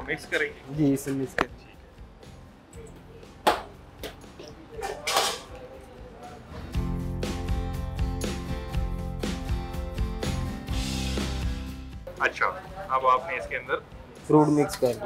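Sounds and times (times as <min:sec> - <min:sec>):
background music with held chords: 0:00.0 - 0:15.0.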